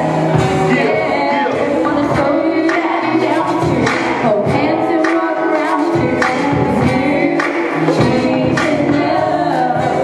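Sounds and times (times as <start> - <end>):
amplified music with beat: 0.0 - 10.0
woman singing into microphone: 0.5 - 10.0.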